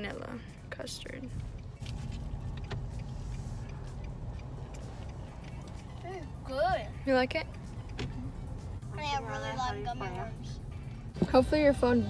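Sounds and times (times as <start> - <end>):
car idling inside cabin: 0.0 - 12.0.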